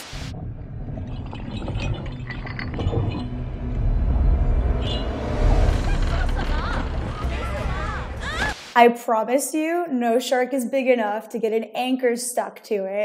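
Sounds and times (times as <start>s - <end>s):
deep low rumble: 0.1s - 8.6s
film soundtrack music: 0.2s - 8.8s.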